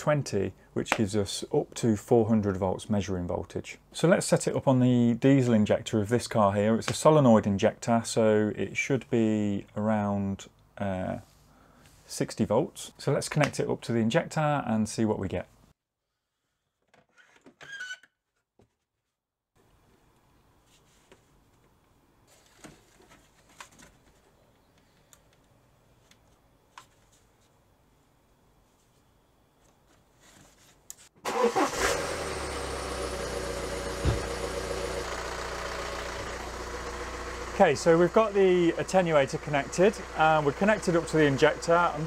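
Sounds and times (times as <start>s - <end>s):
short plastic squeak: 17.1s - 18.2s
diesel engine idling: 31.4s - 42.0s
low thump: 34.0s - 34.4s.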